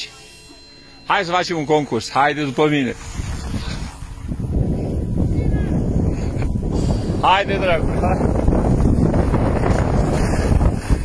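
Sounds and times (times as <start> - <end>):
wind rushing over microphone: 2.9 - 11.0.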